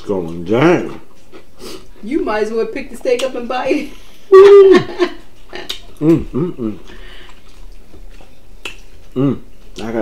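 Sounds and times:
man chewing: 0.0 - 2.0, 4.9 - 10.0.

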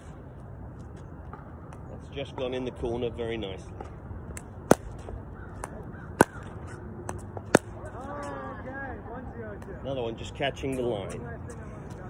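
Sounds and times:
ball bouncing: 3.8 - 8.0.

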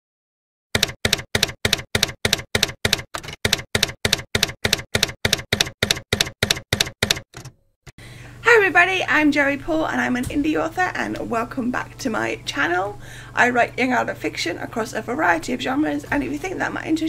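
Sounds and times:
typewriter key strikes: 0.8 - 7.5.

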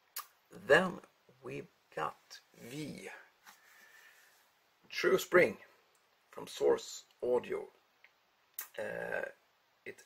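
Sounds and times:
faint hiss: 0.0 - 10.0
person speaking: 0.2 - 3.5.

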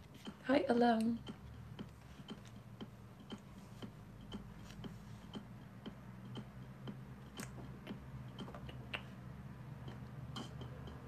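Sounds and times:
faint regular ticking: 0.0 - 11.0
low steady hum: 0.0 - 11.0.

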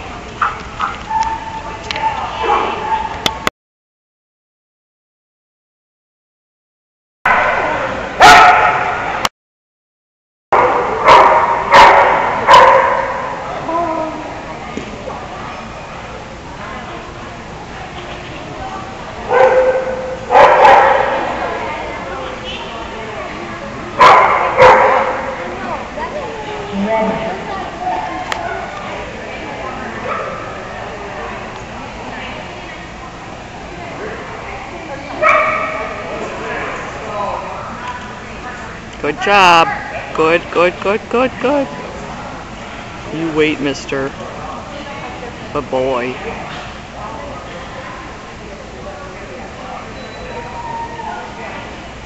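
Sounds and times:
dog yelping: 1.1 - 3.2
dog barking with echo: 7.3 - 9.1, 10.6 - 13.4, 19.3 - 21.2, 24.0 - 25.3
background chatter: 10.6 - 52.0.

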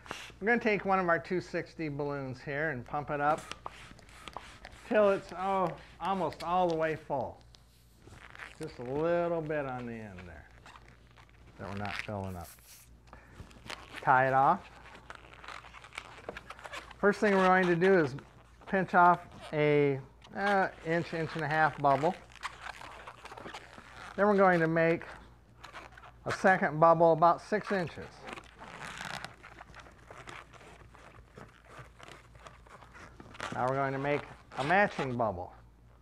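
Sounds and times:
balloon rubber crinkling and squeaking: 0.0 - 36.0.

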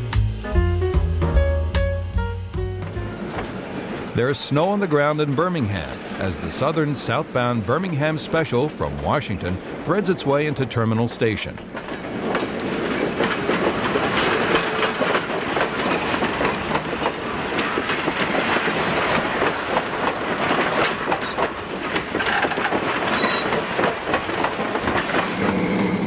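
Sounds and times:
train wheels clacking over rails: 5.0 - 26.0.

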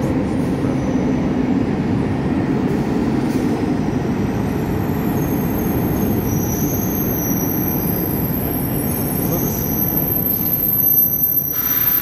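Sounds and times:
high thin whine: 11.0 - 12.0.

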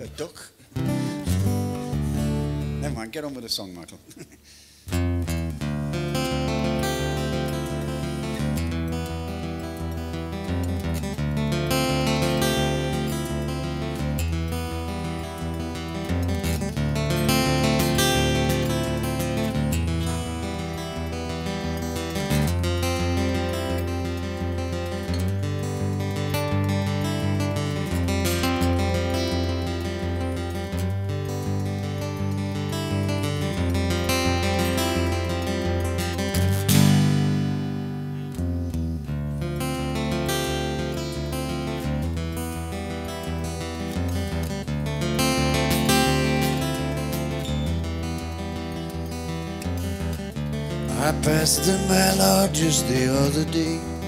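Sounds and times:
acoustic guitar playing: 0.0 - 54.0.

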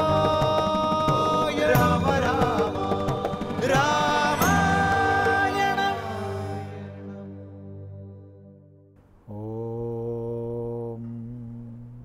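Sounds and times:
man chanting long held note: 9.3 - 12.0.

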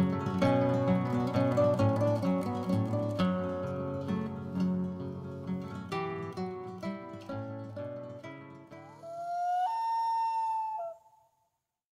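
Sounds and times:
loon wailing: 8.8 - 11.1.

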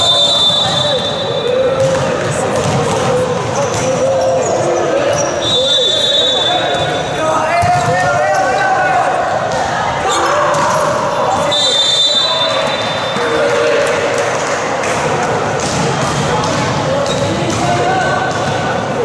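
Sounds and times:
people shouting and calling: 0.0 - 14.4
volleyball being struck: 15.6 - 18.7.

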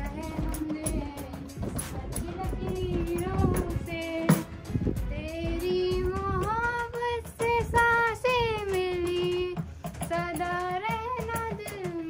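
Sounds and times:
faint rhythmic taps: 0.0 - 12.0
girl singing: 0.0 - 12.0.

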